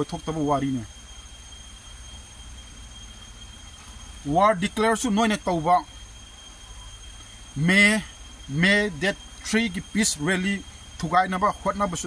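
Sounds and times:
insects droning: 0.0 - 12.0
steady low rumble: 0.0 - 12.0.

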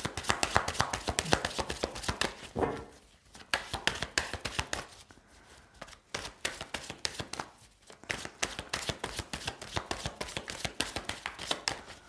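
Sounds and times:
cards being shuffled: 5.8 - 12.0.

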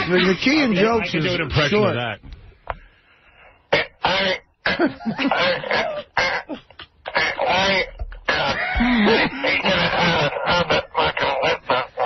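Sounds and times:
man making garbled speech sounds: 0.0 - 2.1, 3.7 - 12.0
coughing-like bursts: 3.6 - 12.0
laughter: 4.7 - 12.0.

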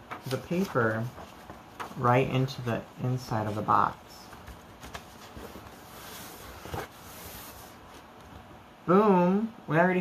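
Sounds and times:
paper rustling: 0.0 - 8.4.

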